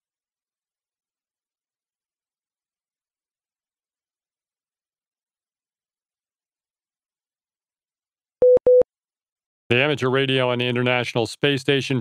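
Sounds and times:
short electronic beeps: 0:08.4 - 0:08.8.

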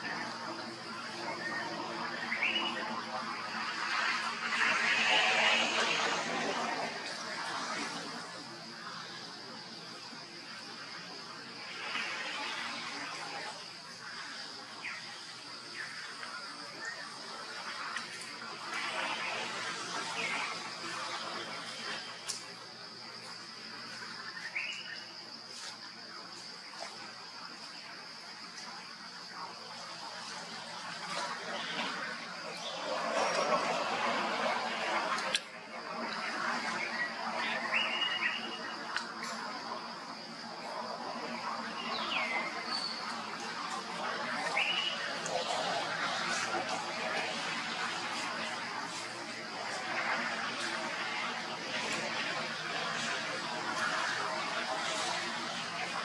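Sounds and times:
high-pitched insect drone: 0:00.0 - 0:56.0.

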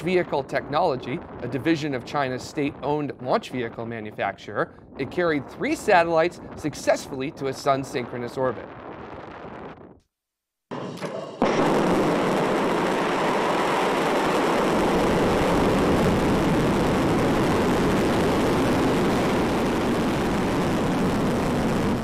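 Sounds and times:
rocket engines roaring: 0:00.0 - 0:04.1, 0:10.7 - 0:22.0.

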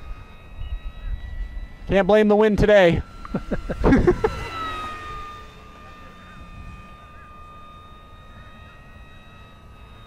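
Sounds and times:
model plane motor whine: 0:00.0 - 0:10.0.

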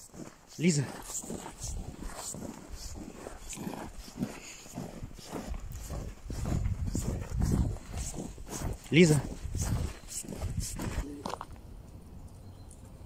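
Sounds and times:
footsteps crunching on snow: 0:00.0 - 0:11.6
low rumble on microphone: 0:01.6 - 0:12.3.

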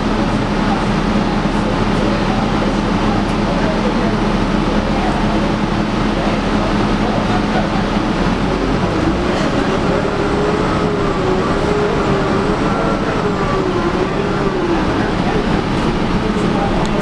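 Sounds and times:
bus engine rumbling: 0:00.0 - 0:17.0
drivetrain whine: 0:00.0 - 0:17.0.

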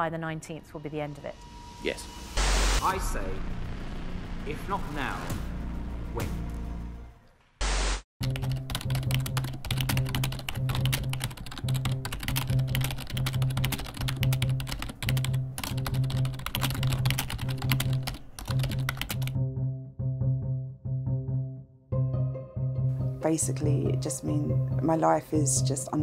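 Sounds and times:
rapid keyboard typing: 0:08.2 - 0:19.4.

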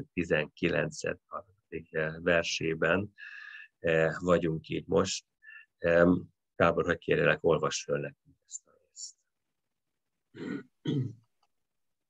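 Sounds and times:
man clearing his throat: 0:10.3 - 0:11.3.

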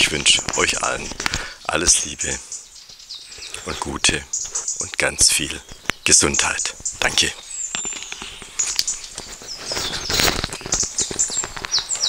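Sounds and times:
small birds chirping: 0:00.0 - 0:12.0
microphone rustling and knocks: 0:06.8 - 0:12.0.

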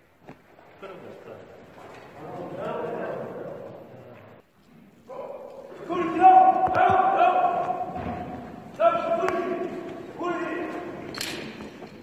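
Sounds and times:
men calling out in echoing hall: 0:00.7 - 0:11.7.

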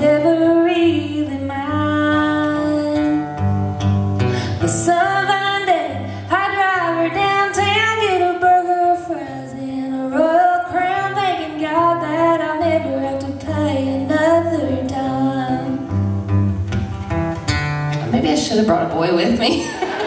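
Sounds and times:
woman singing: 0:00.0 - 0:03.5, 0:04.4 - 0:16.0
strummed acoustic guitar: 0:00.0 - 0:19.0.

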